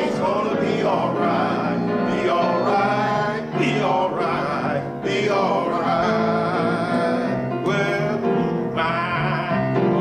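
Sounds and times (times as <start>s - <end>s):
instrumental accompaniment: 0.0s - 10.0s
man singing a hymn: 0.0s - 10.0s.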